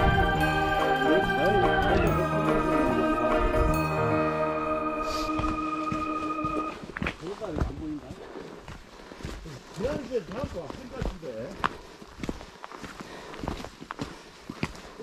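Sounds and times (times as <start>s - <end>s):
footsteps on snow and leaves: 5.0s - 15.0s.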